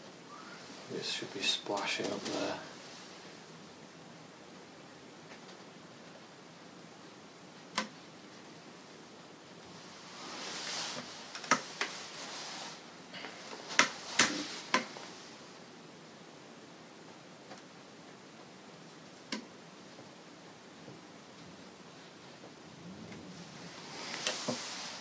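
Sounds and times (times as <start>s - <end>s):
rustling: 0.0s - 3.4s, 9.6s - 15.6s, 22.9s - 25.0s.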